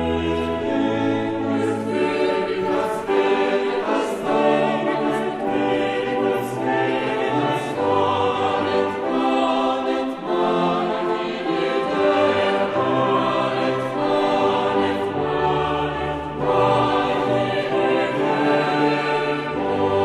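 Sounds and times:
mixed choir singing: 0.0s - 20.0s.

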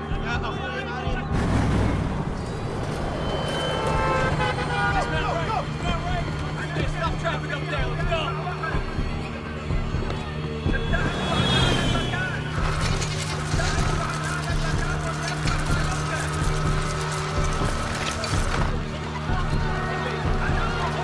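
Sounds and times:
voices: 2.5s - 21.0s.

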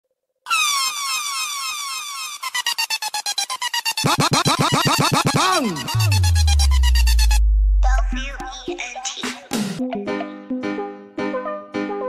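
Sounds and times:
electronic siren swoops: 4.1s - 8.2s.

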